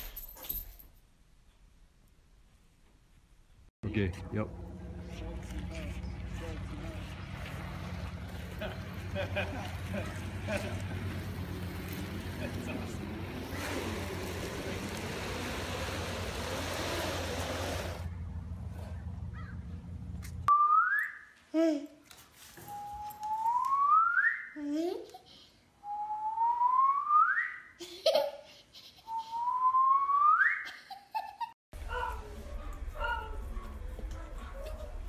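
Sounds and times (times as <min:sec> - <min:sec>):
long rising whistled notes: 0:22.6 - 0:24.5, 0:25.8 - 0:27.7.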